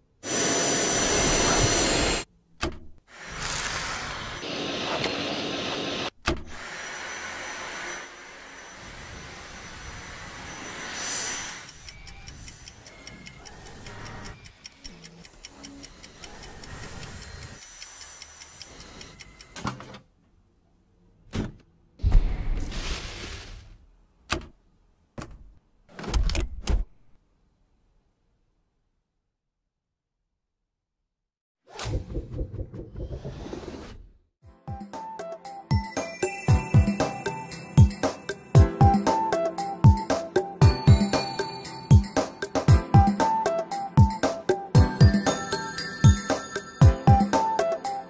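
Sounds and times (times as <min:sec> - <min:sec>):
vacuum cleaner suction hum: 0:00.2 - 0:02.2, 0:03.2 - 0:11.6
clock ticking rapidly: 0:11.6 - 0:19.6.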